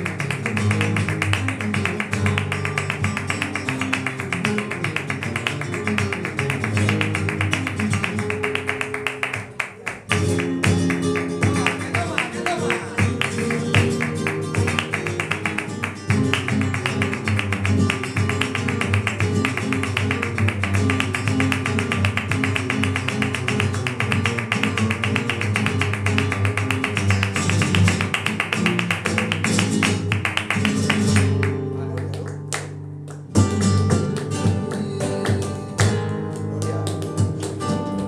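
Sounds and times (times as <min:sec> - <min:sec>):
flamenco guitars playing: 0:00.0 - 0:38.0
hand clapping: 0:00.0 - 0:38.0.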